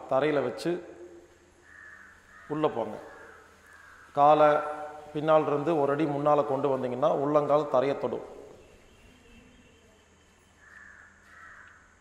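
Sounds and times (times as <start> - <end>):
faint high-pitched tone: 8.5 - 10.8.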